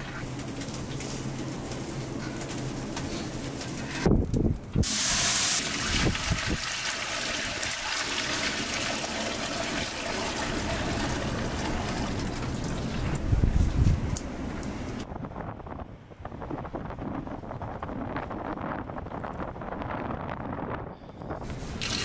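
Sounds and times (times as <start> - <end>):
broth pouring and splashing: 0.0 - 4.1, 4.8 - 13.8, 21.6 - 22.0.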